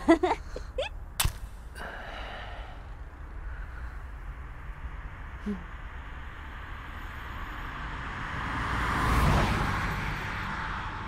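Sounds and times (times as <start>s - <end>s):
person exhaling: 1.8s - 4.1s, 5.4s - 5.8s.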